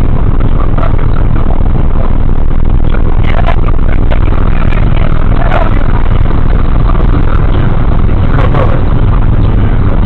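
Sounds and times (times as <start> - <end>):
road and engine noise inside car: 0.0 - 10.0.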